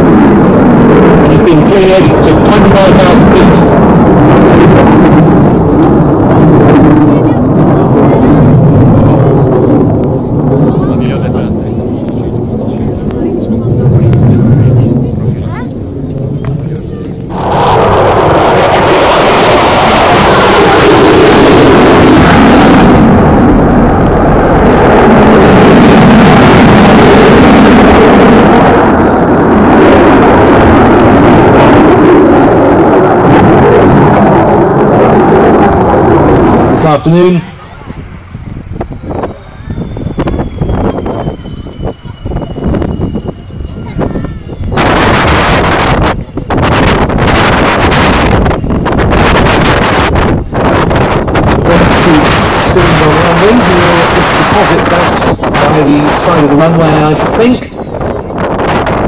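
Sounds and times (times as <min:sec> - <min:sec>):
jet engine roaring overhead: 0:00.0 - 0:59.0.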